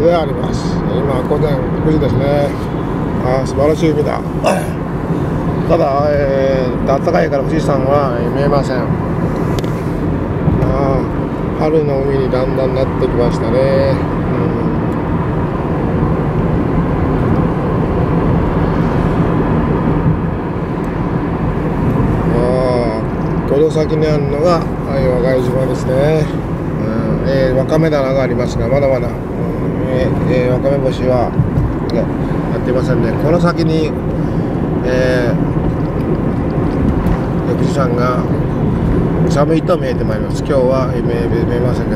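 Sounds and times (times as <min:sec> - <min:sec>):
car engine and road rumble: 0:00.0 - 0:41.9.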